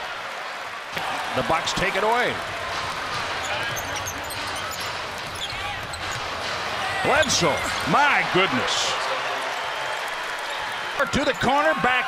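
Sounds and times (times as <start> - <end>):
arena crowd noise: 0.0 - 12.0
sneaker squeaks: 3.1 - 7.8.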